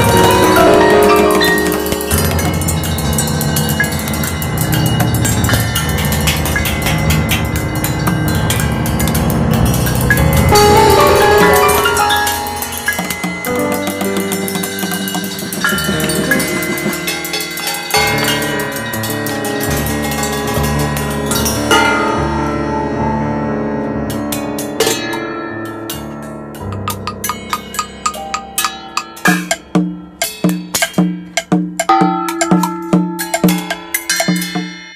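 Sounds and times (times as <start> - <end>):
sticks on cymbals and drums: 0.0 - 22.2, 25.9 - 34.9
small gongs and metal bowls struck: 0.0 - 22.9, 24.1 - 34.9
piano notes: 0.0 - 34.0.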